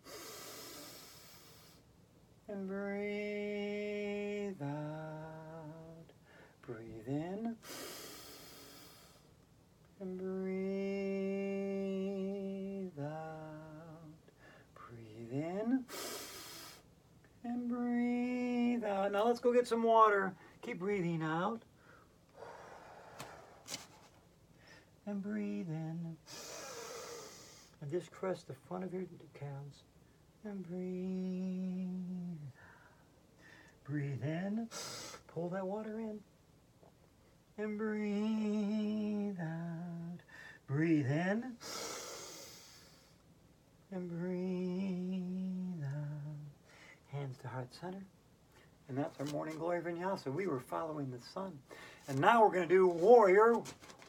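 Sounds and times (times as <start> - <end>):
woman breathing in deeply: 0.0 - 1.8, 7.6 - 9.3, 21.8 - 23.7, 41.6 - 43.2.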